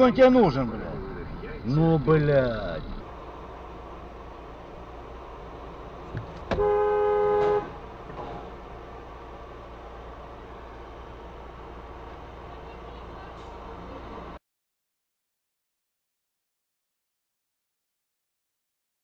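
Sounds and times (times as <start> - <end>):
idling car hum: 0.0 - 14.4
car horn two-note blast: 6.5 - 7.8.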